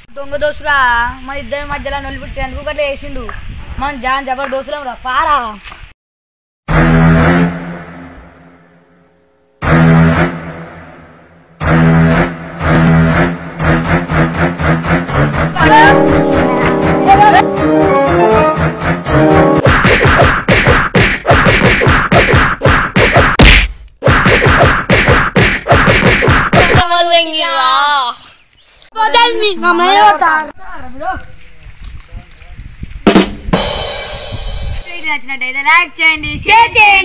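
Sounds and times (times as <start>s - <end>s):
loud buzzy pitched tone: 6.7s - 20.5s
whacking hits: 9.6s - 11.0s, 19.6s - 26.9s.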